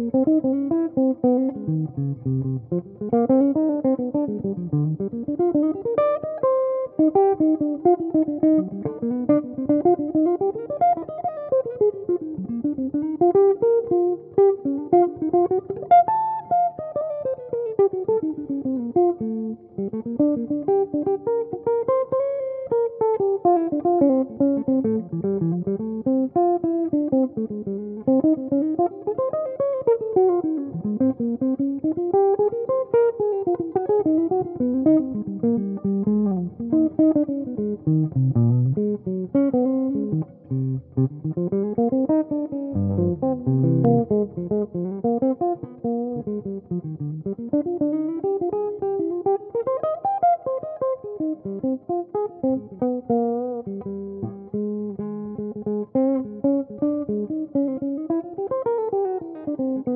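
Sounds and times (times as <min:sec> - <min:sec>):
jazz guitar improvising: 0:00.0 - 0:59.9.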